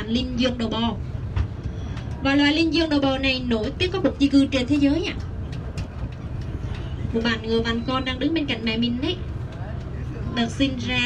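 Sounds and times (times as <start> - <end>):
vehicle engine and rolling: 0.0 - 11.0.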